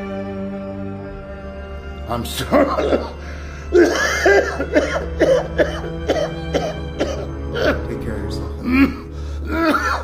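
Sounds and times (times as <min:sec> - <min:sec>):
background music with low drone: 0:00.0 - 0:10.0.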